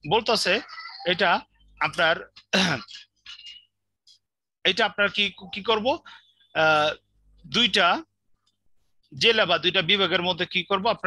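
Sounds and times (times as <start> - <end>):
man speaking: 0.0 - 3.1, 4.6 - 8.2, 9.1 - 11.0
man clearing throat: 2.5 - 3.1.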